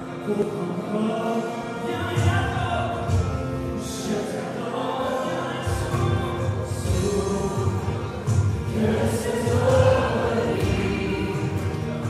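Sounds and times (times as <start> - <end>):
acoustic guitar: 0.0 - 12.0
man singing: 0.0 - 12.0
drums: 1.9 - 4.4, 5.6 - 12.0.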